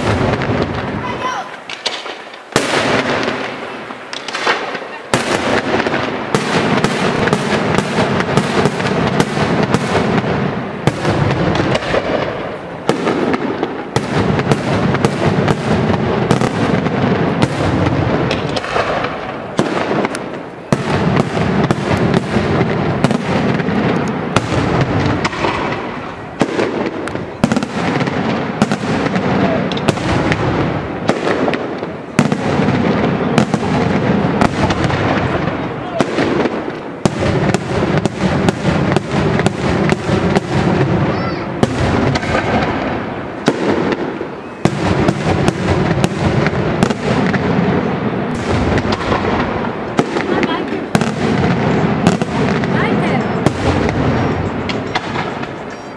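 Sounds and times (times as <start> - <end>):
fireworks bursting with bangs: 0.0 - 55.9
rumbling echo: 2.6 - 55.7.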